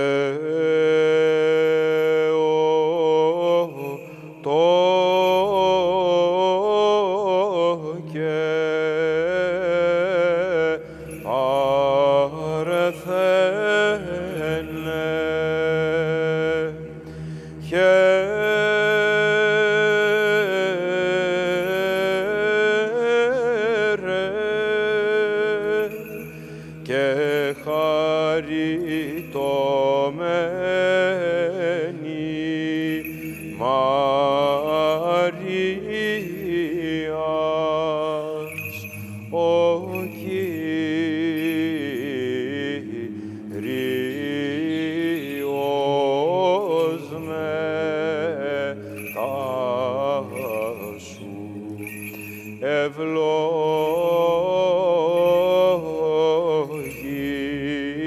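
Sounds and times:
melismatic chant singing: 0.0 - 58.0.

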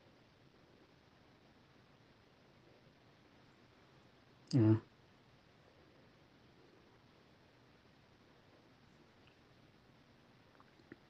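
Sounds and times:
faint background hiss: 0.0 - 11.0.

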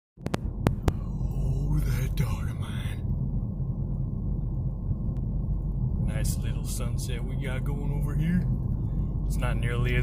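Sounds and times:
car interior rumble: 0.2 - 10.0.

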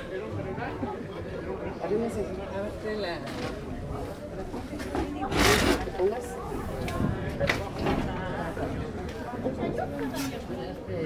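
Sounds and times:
people talking and exclaiming: 0.0 - 11.0.

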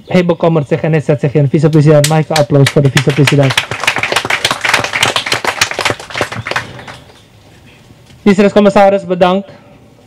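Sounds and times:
audience applauding: 2.6 - 7.2.

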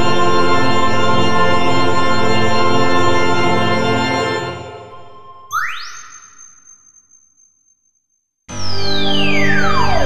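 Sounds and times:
synthesizer organ chord: 8.5 - 10.0
synthesizer tone sweeping upward: 8.5 - 10.0.

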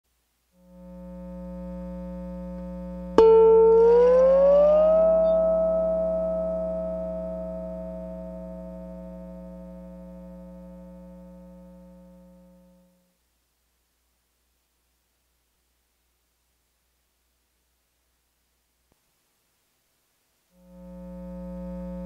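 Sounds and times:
low electrical hum: 0.1 - 22.0
lap steel guitar note sliding: 3.2 - 10.7.

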